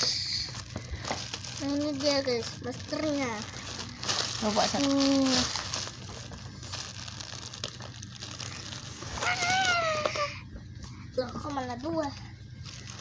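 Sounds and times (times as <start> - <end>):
plastic bag crinkling: 0.0 - 10.3, 11.2 - 13.0.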